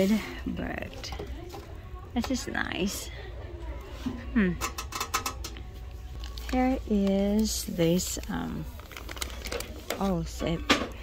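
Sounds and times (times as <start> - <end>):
metal pan and rack rattling: 4.6 - 5.5.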